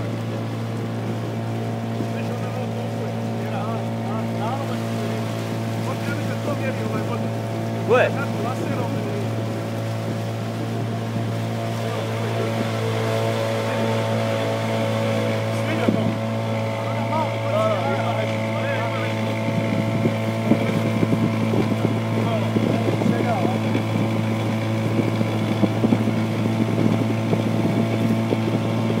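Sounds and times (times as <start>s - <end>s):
outboard motor running: 0.0s - 29.0s
water rushing past hull: 0.0s - 29.0s.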